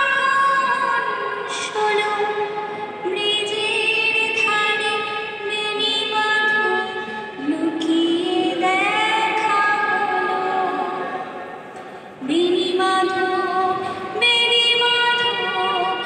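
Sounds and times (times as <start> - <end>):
woman singing: 0.0 - 11.4, 12.2 - 16.0.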